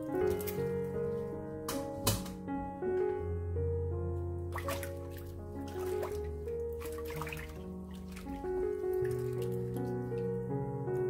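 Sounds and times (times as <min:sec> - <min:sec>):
hand stirring water in a bowl: 0:04.6 - 0:10.3.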